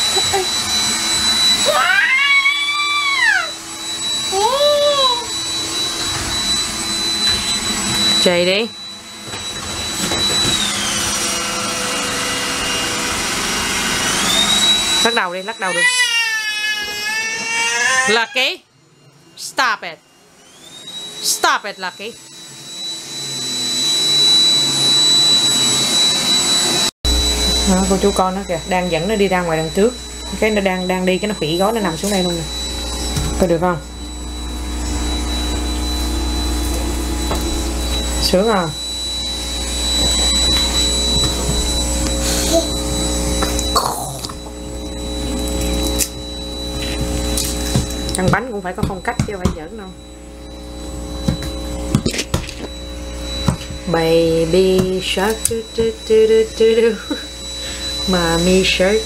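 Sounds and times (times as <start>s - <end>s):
electric motor whine with air rush: 0.0s - 18.2s, 20.0s - 59.0s.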